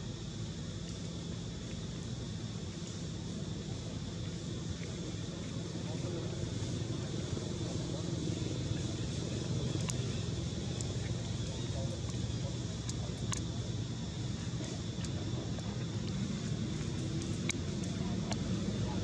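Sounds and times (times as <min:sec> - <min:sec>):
low outdoor rumble: 0:00.0 - 0:19.0
faint sharp ticks: 0:09.6 - 0:13.6.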